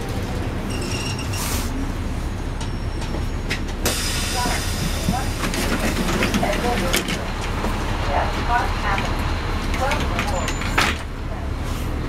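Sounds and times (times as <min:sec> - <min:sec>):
bus engine idling: 0:00.0 - 0:12.0
street noise: 0:00.0 - 0:12.0
voices: 0:04.0 - 0:11.6.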